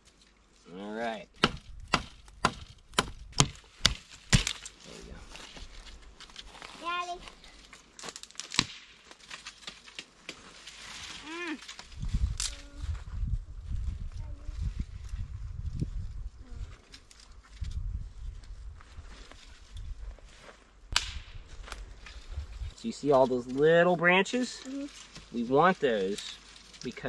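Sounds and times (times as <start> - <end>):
leafy branches rustling: 0.0 - 27.0
twigs snapping: 1.4 - 6.6, 7.3 - 12.7, 20.9 - 22.3
wind buffeting microphone: 11.9 - 16.7, 17.5 - 19.1.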